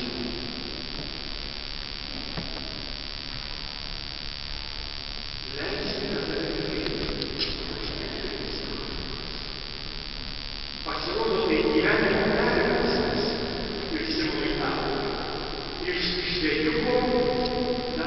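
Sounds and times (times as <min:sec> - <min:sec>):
reverberant church room tone: 0:00.0 - 0:18.0
preacher's voice echoing: 0:05.5 - 0:09.2, 0:10.9 - 0:18.0.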